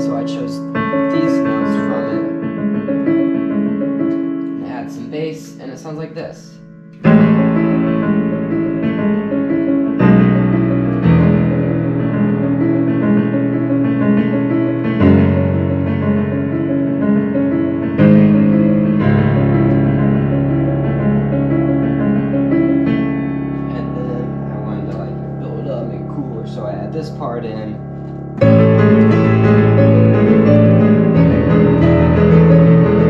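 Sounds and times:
digital piano arpeggios: 0.0s - 33.0s
low piano bass notes: 0.0s - 33.0s.

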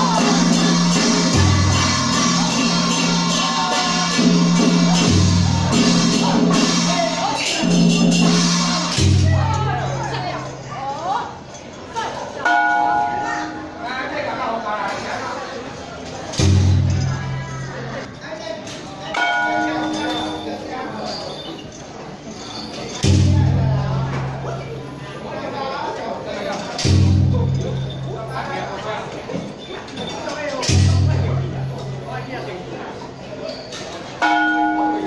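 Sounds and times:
metal bell ringing: 0.0s - 10.5s, 12.4s - 13.9s, 19.1s - 23.1s, 26.6s - 28.8s, 33.4s - 35.0s
murmur of crowd: 0.0s - 35.0s.

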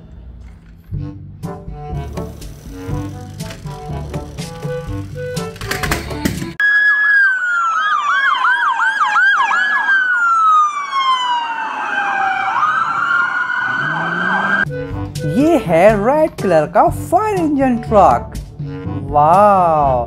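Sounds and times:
music: 0.1s - 6.6s, 14.6s - 20.0s
siren yelp: 6.6s - 14.7s
police siren wailing: 6.6s - 14.9s.

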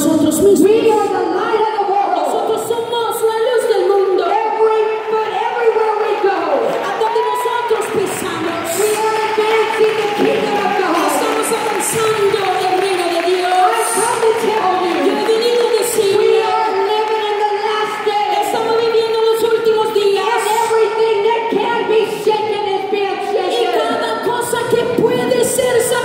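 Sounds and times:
crowd voices: 0.0s - 26.0s.

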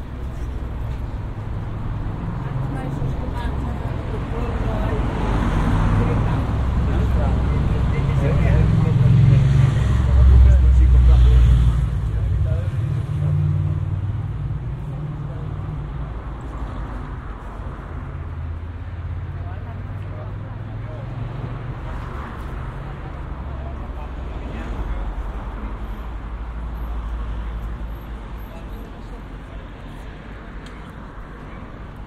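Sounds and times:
vehicle passing: 0.0s - 27.7s
people chatting: 2.4s - 13.5s.

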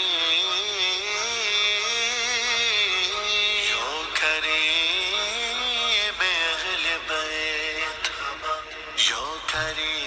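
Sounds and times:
man singing a long held note: 0.0s - 10.0s.

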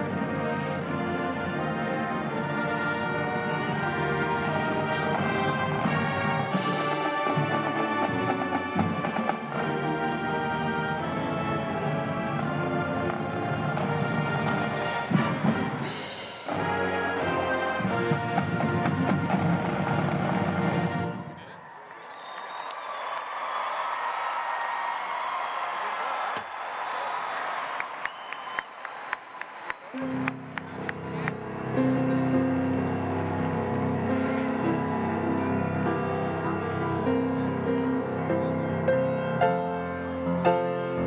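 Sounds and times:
brass and timpani chords: 0.0s - 21.4s.

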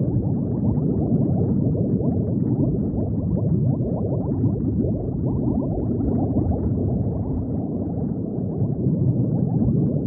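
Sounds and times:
underwater bubbling: 0.0s - 10.0s.

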